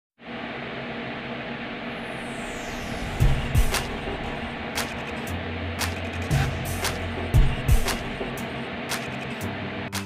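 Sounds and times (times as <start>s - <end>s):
sharp click: 8.9s - 9.4s.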